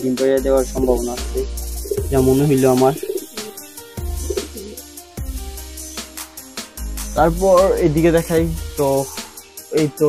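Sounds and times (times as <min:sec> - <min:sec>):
background music with a beat: 0:00.0 - 0:10.0
pigeon cooing: 0:01.2 - 0:05.0.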